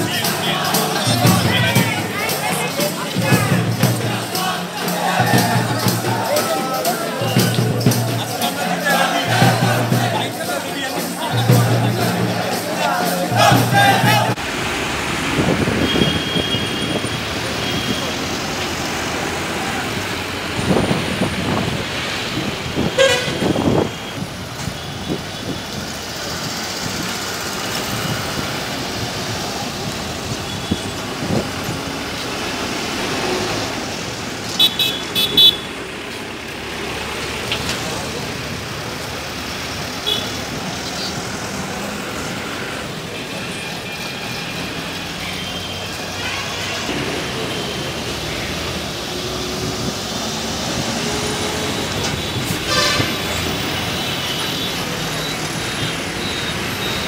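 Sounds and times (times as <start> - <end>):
buses driving past: 0.0 - 57.0
street traffic: 0.0 - 57.0
car horns honking: 15.7 - 18.4, 22.8 - 25.8, 34.5 - 35.8, 40.0 - 41.2, 51.0 - 57.0.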